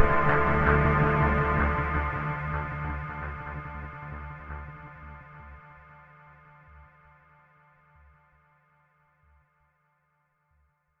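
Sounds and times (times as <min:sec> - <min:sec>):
background music with pulsing bass: 0:00.0 - 0:07.6.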